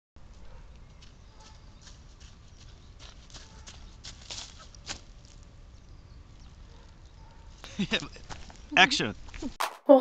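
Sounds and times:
running footsteps on dry leaves: 0.2 - 5.4.

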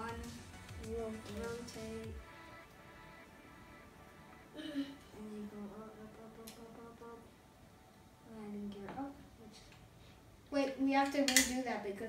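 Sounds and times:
child humming: 4.5 - 7.2.

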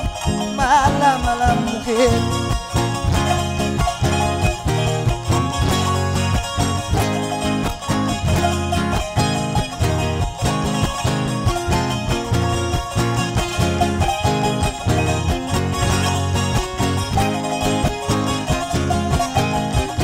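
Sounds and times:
charango and guitar strumming: 0.0 - 20.0
low bass line: 0.0 - 20.0.

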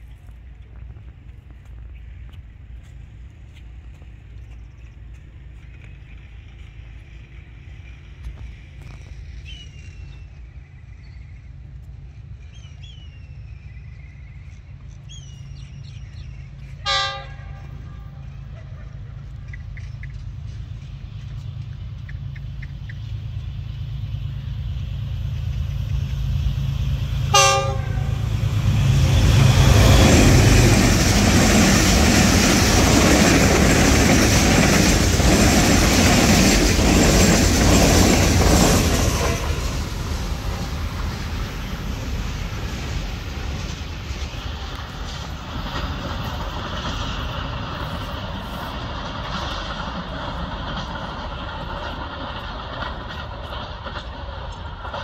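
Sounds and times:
train wheels rushing on rails: 0.0 - 55.0
train horn blasts: 16.8 - 18.3, 27.2 - 28.6.

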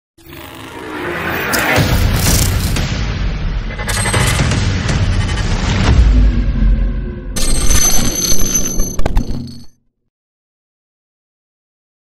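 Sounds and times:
bell-like ringing: 7.4 - 9.7.

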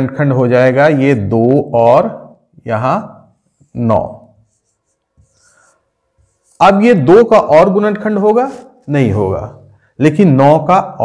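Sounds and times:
man speaking: 0.0 - 4.4, 6.6 - 11.0
marker drawing on whiteboard: 3.3 - 7.3.

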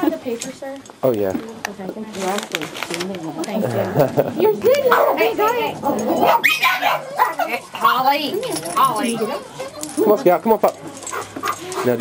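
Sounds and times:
people's voices: 0.0 - 12.0
dog barking: 4.9 - 5.4, 6.2 - 7.6.

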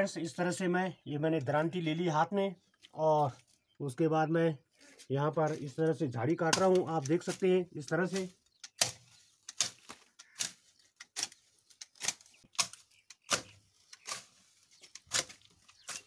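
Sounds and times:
sickle slashing woody shrubs: 4.8 - 16.0.

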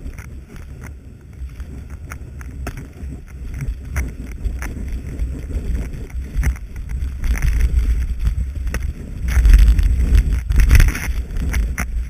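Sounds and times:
skis scraping on snow: 0.0 - 12.0
wind buffeting microphone: 0.0 - 12.0.

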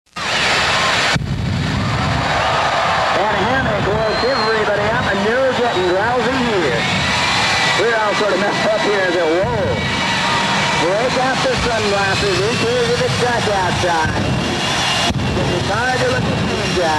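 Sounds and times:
jet engines roaring: 0.1 - 16.9.

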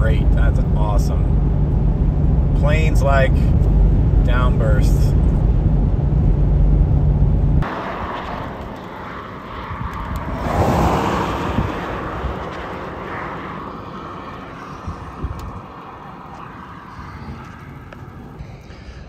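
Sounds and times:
road and engine rumble in car: 0.0 - 19.0
car passing on highway: 7.6 - 18.5.

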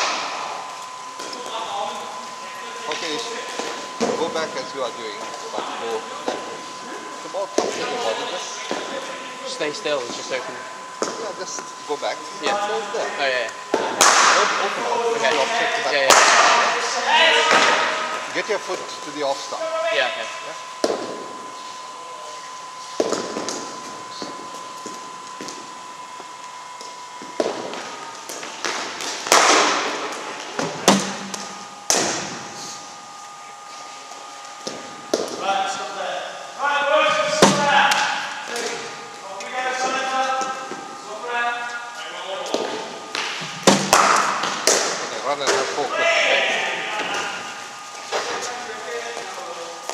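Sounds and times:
voices talking: 0.0 - 49.9.

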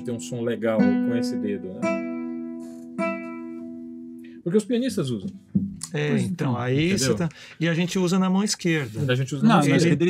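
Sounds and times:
classical guitar chord plucked: 0.0 - 4.3.

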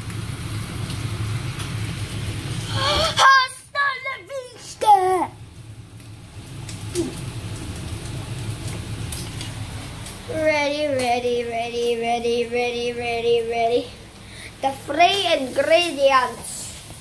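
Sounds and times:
child crying out: 2.7 - 5.3.

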